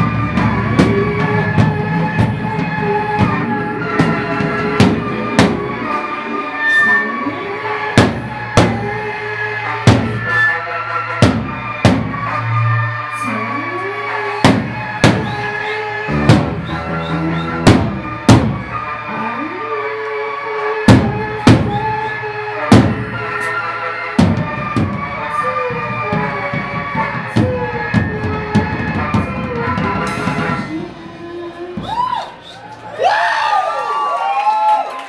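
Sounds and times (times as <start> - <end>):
heavy drum hits: 0.3 - 5.9, 8.0 - 9.0, 9.9 - 10.3, 11.2 - 12.3, 14.4 - 15.4, 16.1 - 16.7, 17.6 - 18.7, 20.9 - 21.9, 22.7 - 23.2, 24.2 - 25.1.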